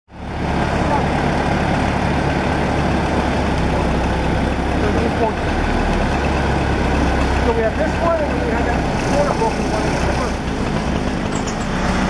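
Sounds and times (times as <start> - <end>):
forklift engine humming: 0.1 - 12.0.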